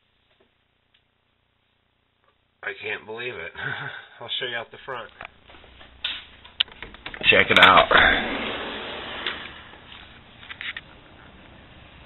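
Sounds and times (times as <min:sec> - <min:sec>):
light clicks and knocks: 0:05.1 - 0:07.3.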